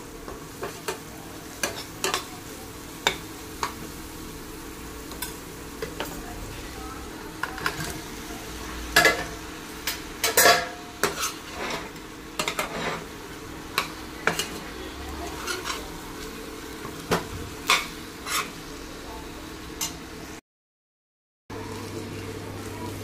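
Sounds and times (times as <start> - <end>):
food sizzling in a pan: 0.0 - 20.4, 21.5 - 23.0
metal spoon scraping a pan: 9.0 - 15.9, 17.6 - 18.6.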